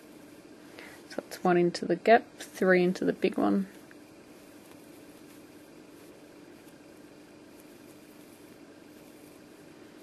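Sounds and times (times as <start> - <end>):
faint hiss: 2.3 - 10.0.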